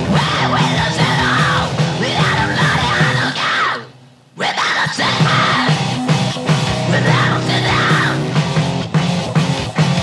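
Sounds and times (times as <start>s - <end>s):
loud driving band: 0.0s - 3.6s, 4.9s - 10.0s
yelled punk vocals: 0.0s - 8.8s.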